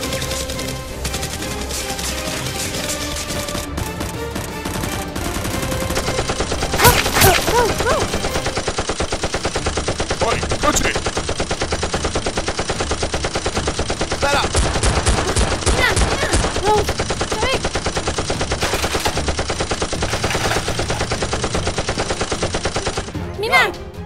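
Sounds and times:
rapid automatic gunfire: 0.0 - 23.2.

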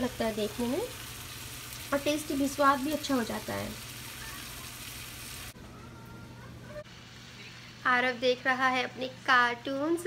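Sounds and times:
food sizzling in frying pan: 0.0 - 5.6.

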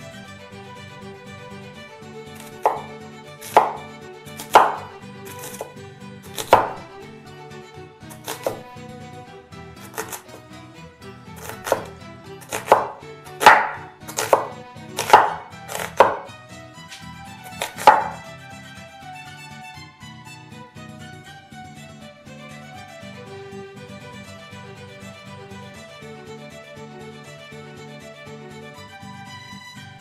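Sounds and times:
soft background music: 0.0 - 30.0
knife chopping on wooden board: 2.4 - 5.7, 6.3 - 6.8, 8.1 - 8.7, 9.8 - 10.4, 11.4 - 16.3, 17.4 - 18.2.

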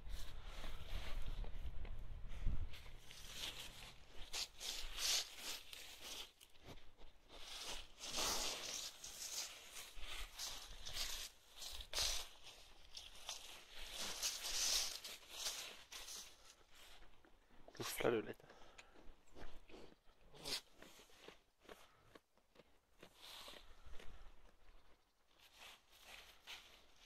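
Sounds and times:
wool rubbing against microphone: 0.0 - 6.5, 7.4 - 16.9.

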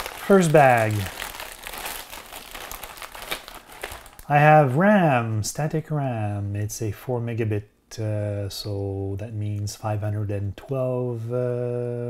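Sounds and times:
plastic bags crinkling: 0.0 - 4.5.

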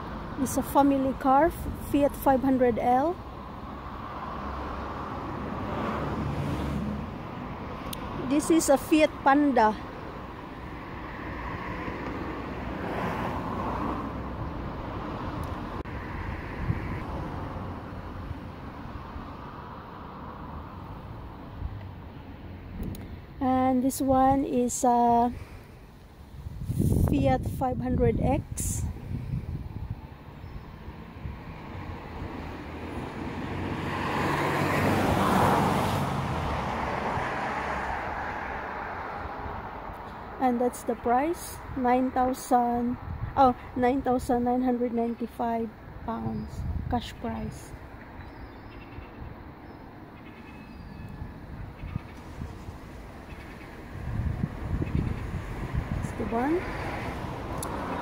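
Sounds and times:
road traffic rumble: 0.0 - 58.0
vehicle passing: 0.0 - 58.0
vehicle driving past: 3.3 - 8.2, 30.8 - 39.9.

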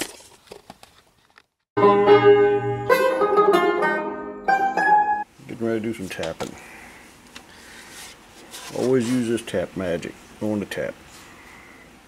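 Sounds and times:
banjo playing: 1.8 - 5.3.

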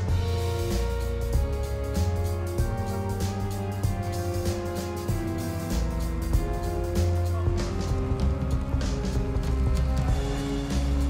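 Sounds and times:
film score music: 0.0 - 11.0
steady low bass: 0.0 - 11.0.

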